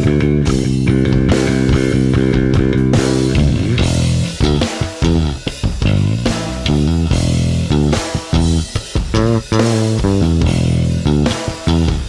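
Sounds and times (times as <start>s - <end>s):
electric bass plucked notes: 0.0s - 12.0s.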